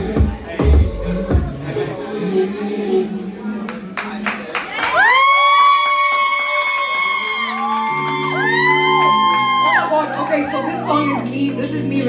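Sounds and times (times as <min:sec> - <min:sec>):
woman singing into a microphone: 0:09.0 - 0:12.0.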